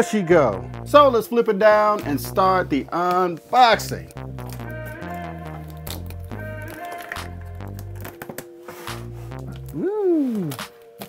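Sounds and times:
held bass notes: 0.0s - 8.2s, 8.9s - 10.1s.

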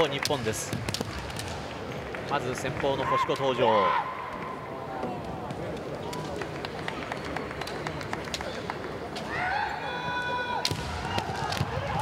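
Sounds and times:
murmur of large hall: 0.0s - 12.0s.

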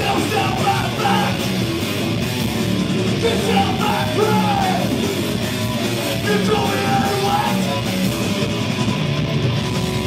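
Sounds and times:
yelled lead vocal: 0.0s - 2.1s, 2.9s - 8.2s
thrash band playing live: 0.0s - 10.0s.

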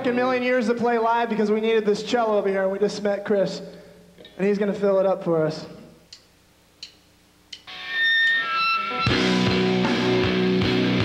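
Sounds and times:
held high notes ringing: 7.7s - 9.7s
live rock band playing: 7.7s - 11.0s.

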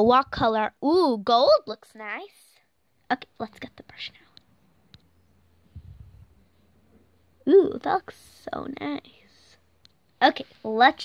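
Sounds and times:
soft low bumps: 4.8s - 7.2s.

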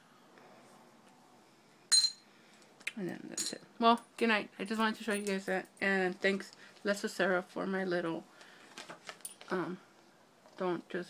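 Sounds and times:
jewelry ring clinking: 1.9s - 2.3s.

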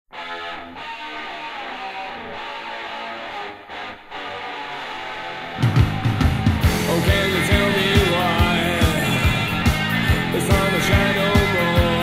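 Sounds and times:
electric guitar: 0.1s - 12.0s
rock band with drums: 0.1s - 12.0s.

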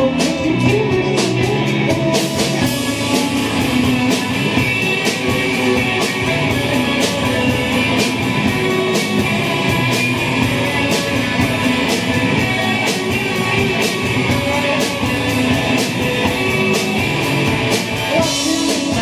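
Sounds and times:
drum kit beat: 0.0s - 19.0s
electric guitars: 0.0s - 19.0s.

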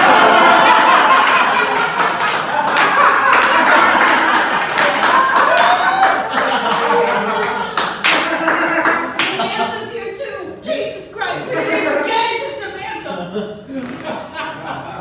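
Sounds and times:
audience clapping: 0.0s - 9.5s
voices: 6.5s - 14.4s.

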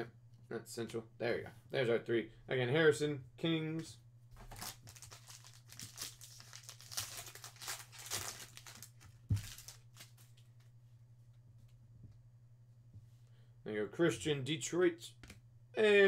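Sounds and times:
foil pack tearing and crinkling: 4.4s - 10.2s.

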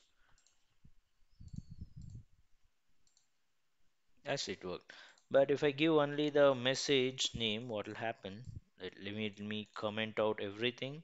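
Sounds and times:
computer mouse clicks: 0.3s - 0.7s, 1.3s - 2.3s, 3.0s - 3.4s.

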